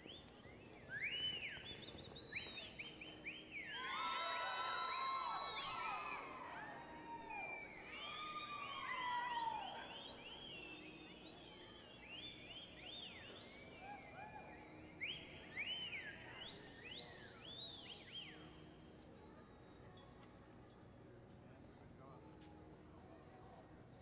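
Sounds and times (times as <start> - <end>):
spectators whistling: 0.0 - 18.6
faint crowd hum: 0.0 - 24.0
spectators whooping: 3.6 - 10.8.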